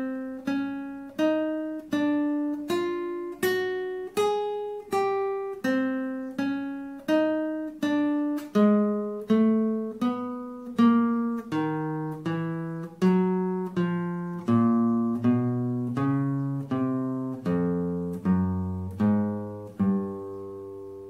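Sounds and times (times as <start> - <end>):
classical guitar plucked notes: 0.0 - 21.0.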